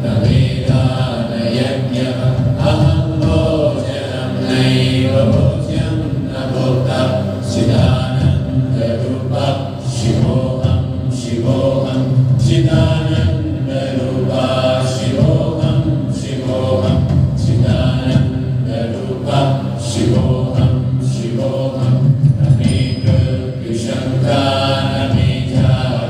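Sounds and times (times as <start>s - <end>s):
men chanting together: 0.0s - 26.0s.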